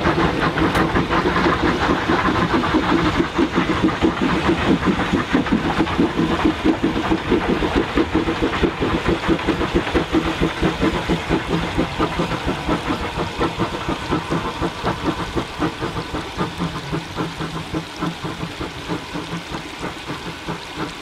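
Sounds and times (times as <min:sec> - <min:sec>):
steam locomotive exhaust beating: 0:00.0 - 0:21.0.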